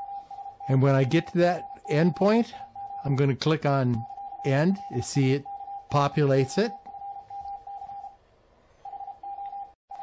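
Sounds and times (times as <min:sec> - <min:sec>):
morse code tone: 0:00.0 - 0:08.2, 0:08.8 - 0:10.0.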